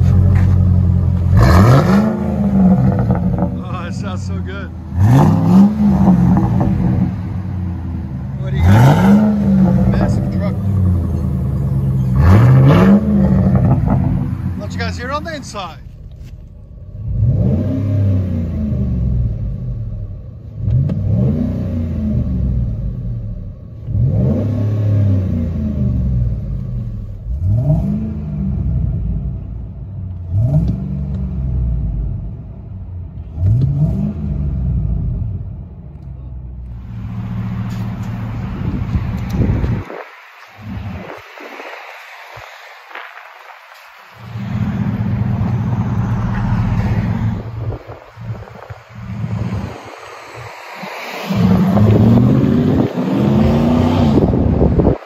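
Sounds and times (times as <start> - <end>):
engine revving: 0.0 - 15.6, 16.9 - 20.0, 20.6 - 29.6, 30.2 - 32.3, 33.2 - 35.6, 44.2 - 55.0
steady engine rumble: 0.0 - 55.0
wind noise: 37.4 - 55.0.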